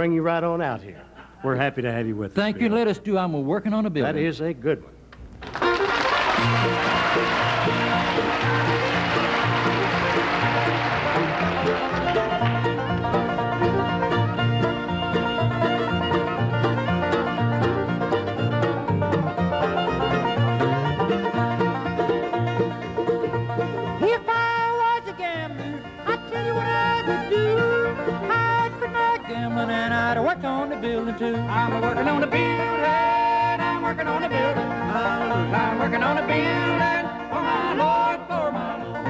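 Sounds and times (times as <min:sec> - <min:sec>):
fiddles: 0:05.1 - 0:39.0
acoustic guitar: 0:05.2 - 0:39.0
upright bass: 0:05.2 - 0:39.0
banjo: 0:05.6 - 0:39.0
mandolin: 0:05.6 - 0:39.0
harmony voices singing: 0:29.5 - 0:39.0.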